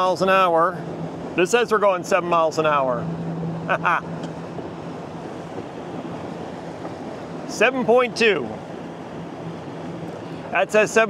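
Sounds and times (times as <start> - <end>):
electric outboard motor hum: 0.0 - 10.5
wind on microphone: 0.0 - 10.6
water rushing past boat hull: 0.0 - 11.0.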